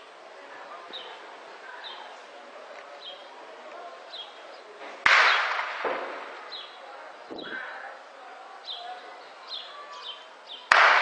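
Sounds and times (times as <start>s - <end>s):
distant explosion with rumble: 5.1s - 6.4s.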